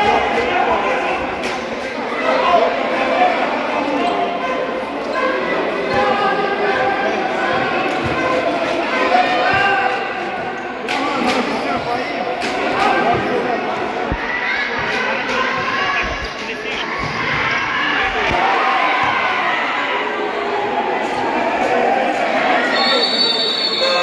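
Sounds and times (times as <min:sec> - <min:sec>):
crowd voices and shouts echoing: 0:00.0 - 0:24.0.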